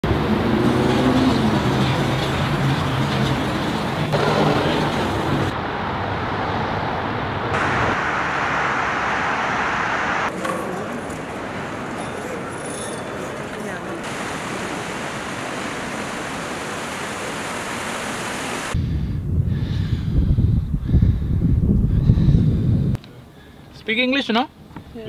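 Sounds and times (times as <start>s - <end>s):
passing cars: 0.0s - 18.8s.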